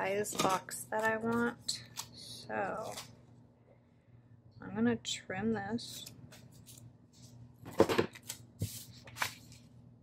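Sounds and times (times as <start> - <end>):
paper rustling: 5.9 - 9.8.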